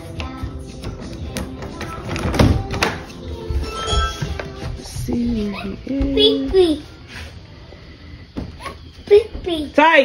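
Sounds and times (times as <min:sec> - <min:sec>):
background music: 0:00.0 - 0:09.7.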